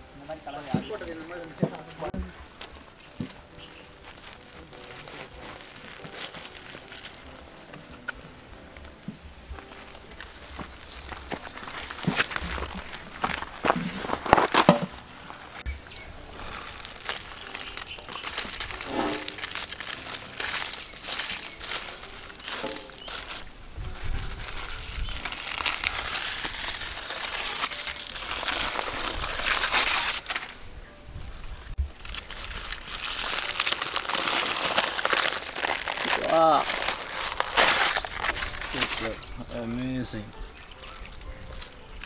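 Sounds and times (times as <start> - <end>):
wrapping crinkling and crunching: 0.0 - 30.6, 31.8 - 42.0
sharp cracks: 31.9 - 39.2.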